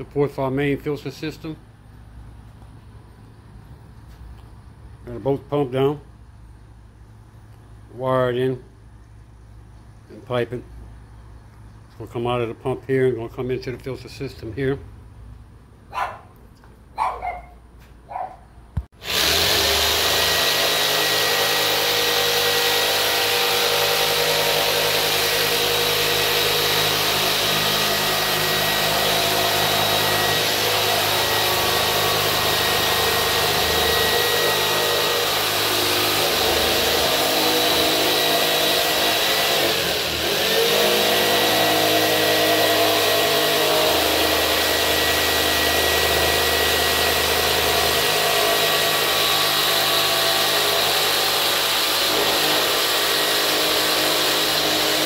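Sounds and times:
jigsaw cutting through plastic: 0:19.0 - 0:55.0.

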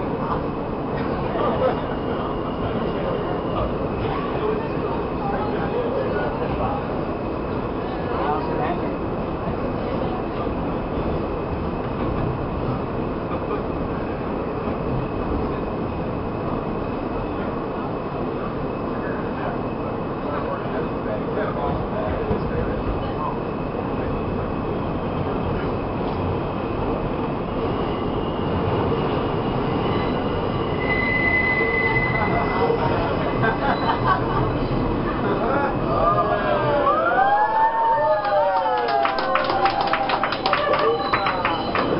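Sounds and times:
subway train running: 0:00.0 - 0:41.9
high wheel squeal: 0:27.9 - 0:34.8, 0:40.5 - 0:41.9.

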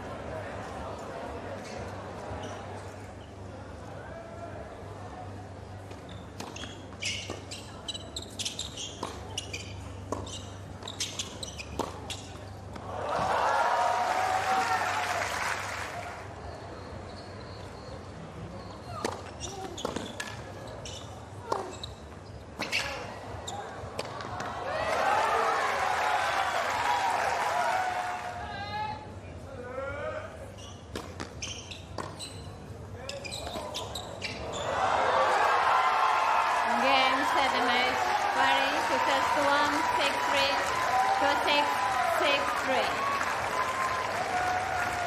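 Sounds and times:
tennis ball bouncing: 0:08.9 - 0:09.5, 0:10.1 - 0:13.3, 0:30.9 - 0:31.4, 0:32.0 - 0:32.2
crowd cheering and applause: 0:12.8 - 0:16.3, 0:24.5 - 0:28.4, 0:34.6 - 0:45.0.

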